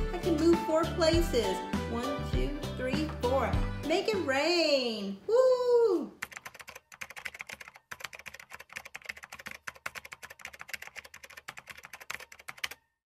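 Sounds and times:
keyboard typing: 6.2 - 12.8.

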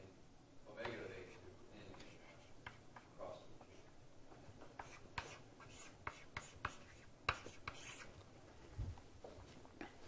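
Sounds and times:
pen tapping and stroking on paper: 4.8 - 8.0.

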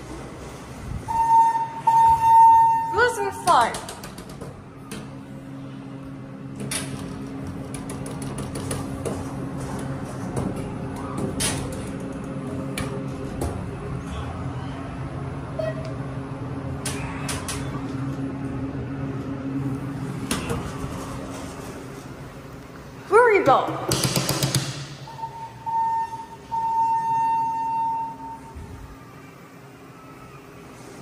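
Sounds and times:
elevator car humming: 0.0 - 23.7, 24.7 - 31.0.

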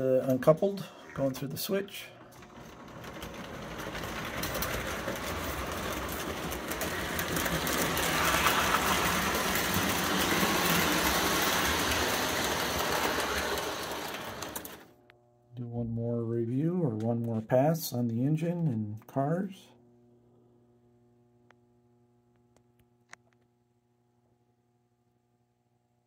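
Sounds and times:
wheels clattering over rails: 0.3 - 14.9
toy train motor whirring: 2.4 - 14.9.

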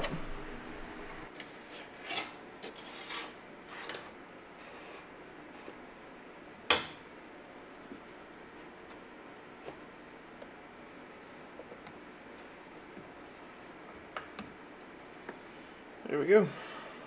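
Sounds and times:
wire and cable scraping: 1.7 - 4.0.

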